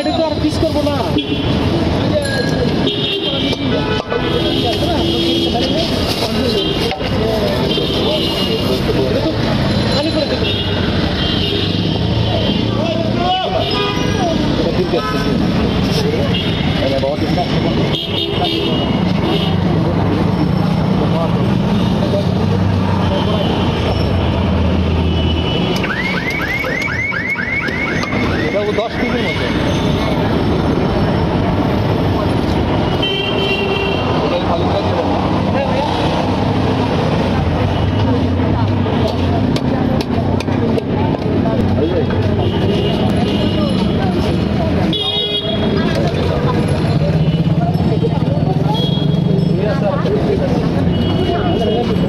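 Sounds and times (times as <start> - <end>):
people talking: 0.0 - 11.0, 26.2 - 31.2, 34.0 - 52.0
vehicle horns tooting: 13.4 - 15.5
vehicle engines running: 34.0 - 52.0.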